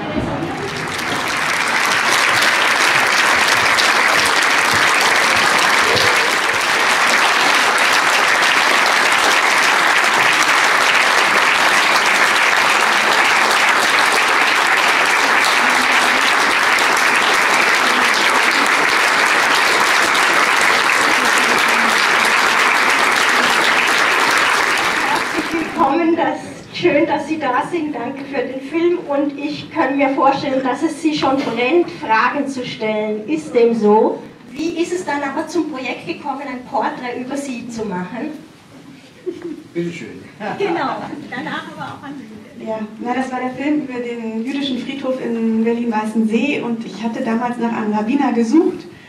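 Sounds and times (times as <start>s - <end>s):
audience applauding: 0.0s - 26.1s.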